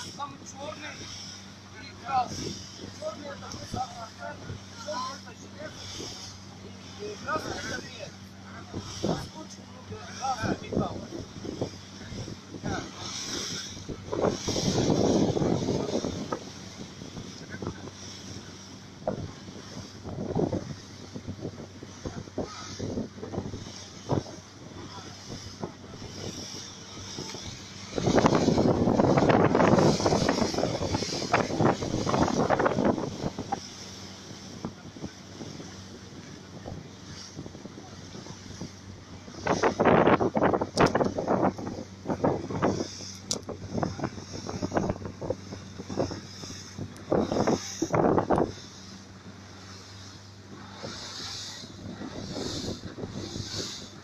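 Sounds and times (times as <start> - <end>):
motorboat engine running: 0.0 - 54.0
water rushing past hull: 0.0 - 54.0
wind on microphone: 0.0 - 54.0.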